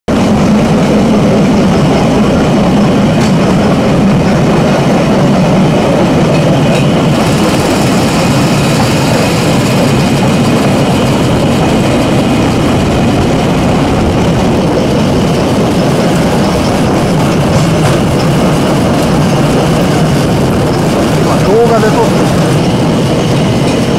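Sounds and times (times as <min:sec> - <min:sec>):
rail trolley engine rumbling: 0:00.1 - 0:23.9.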